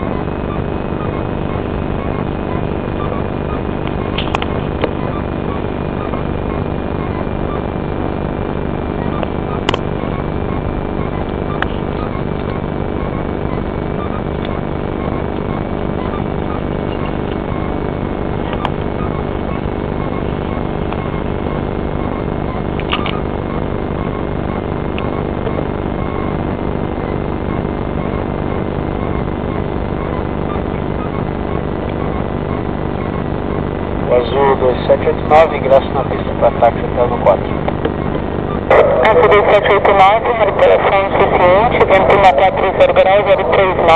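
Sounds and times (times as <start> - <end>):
aircraft engine drone: 0.0 - 43.9
thin high whine: 0.0 - 43.9
faint clicks: 3.8 - 5.0.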